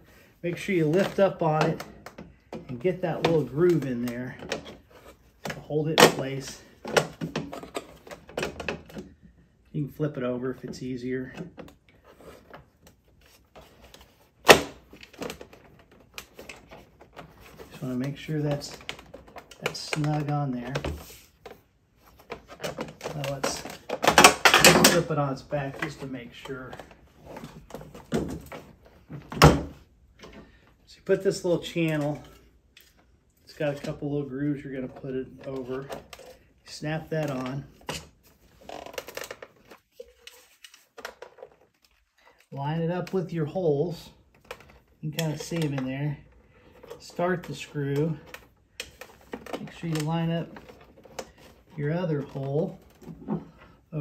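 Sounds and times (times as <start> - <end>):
plastic parts scraping: 0.0 - 9.3, 10.5 - 54.0
plastic parts clicking: 46.6 - 54.0.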